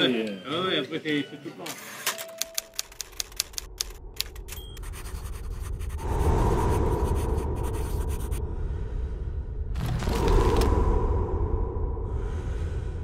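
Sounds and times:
low rumbling drone: 4.0 - 13.0.

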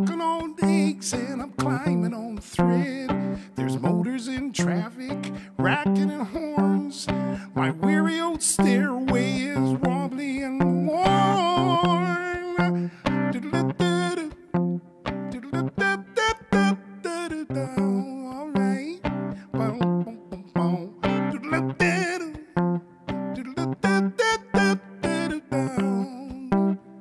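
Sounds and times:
acoustic guitar strumming: 0.0 - 27.0
man singing: 0.0 - 27.0.

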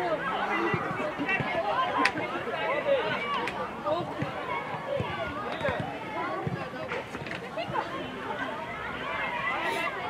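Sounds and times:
young players calling and shouting: 0.0 - 10.0.

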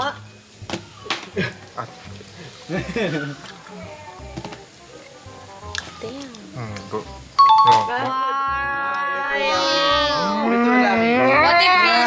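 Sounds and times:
music: 0.0 - 12.0
two-note chime: 7.4 - 8.1.

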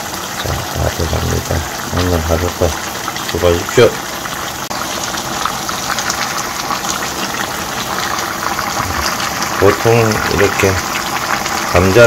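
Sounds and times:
food bubbling in a frying pan: 0.0 - 12.0.

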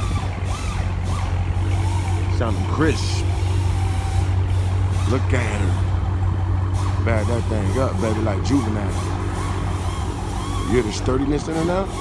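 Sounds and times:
car engine idling low rumble: 0.0 - 12.0.

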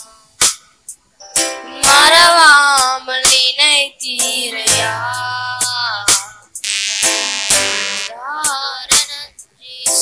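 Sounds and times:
keyboard accompaniment: 6.6 - 8.1.

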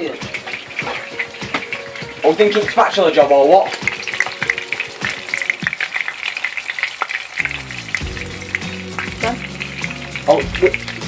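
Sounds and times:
steak sizzling in frying pan: 0.0 - 11.0.

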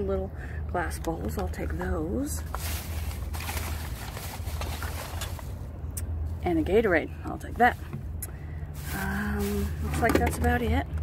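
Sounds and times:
plastic bag rustling and crinkling: 2.2 - 5.7, 8.7 - 10.2.

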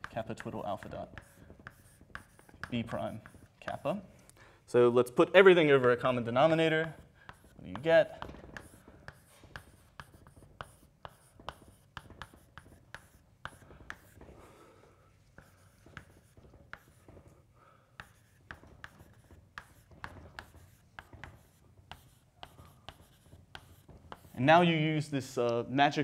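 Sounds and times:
chalk tapping and scratching: 0.0 - 4.3, 5.4 - 14.4, 15.2 - 24.8.

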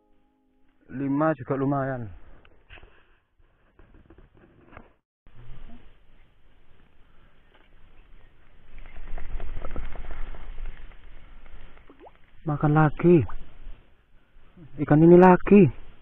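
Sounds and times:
handling and rustling on camera: 6.7 - 11.9.

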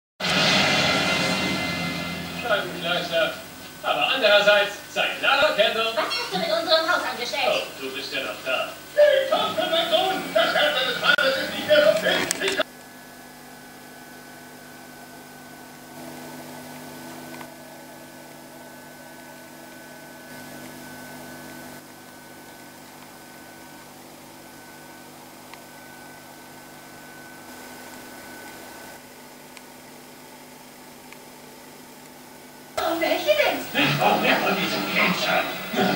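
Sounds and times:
loud rushing sound effect: 0.2 - 3.6
television dialogue: 0.2 - 12.7, 32.8 - 35.9
television hum and hiss: 0.2 - 35.9.

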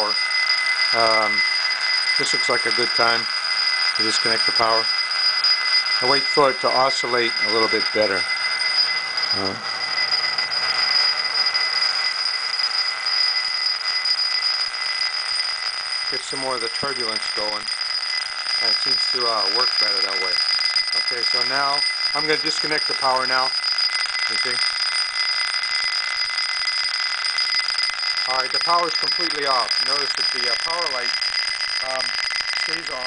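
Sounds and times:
steady high-pitched whine: 0.0 - 33.0
steel ball rolling in glass bowl: 0.0 - 33.0.

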